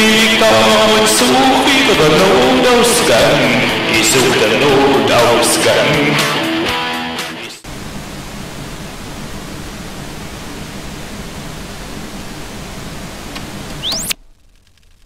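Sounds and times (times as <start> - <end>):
guitar rock song: 0.0 - 7.7
short rising whine: 7.6 - 15.0
television static hiss: 7.6 - 15.0.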